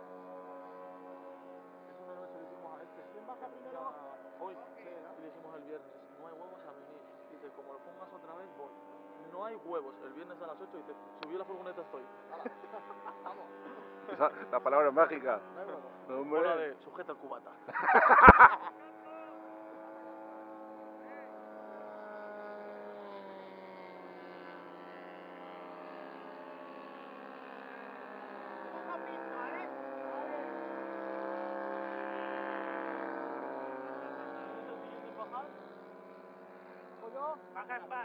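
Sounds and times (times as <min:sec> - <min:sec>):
model plane engine in flight: 0:00.0 - 0:38.0.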